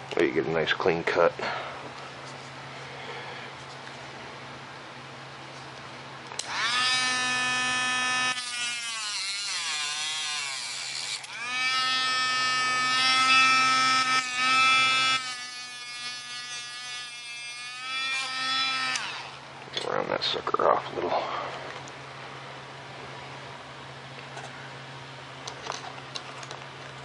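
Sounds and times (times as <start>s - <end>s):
rotary tool cutting rod: 6.4s - 19.4s.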